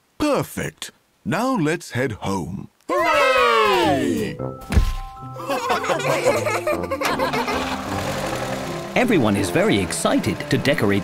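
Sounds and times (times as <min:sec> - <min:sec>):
background music: 0:03.8 - 0:11.0
laughter: 0:05.4 - 0:07.8
cartoon car engine: 0:05.9 - 0:11.0.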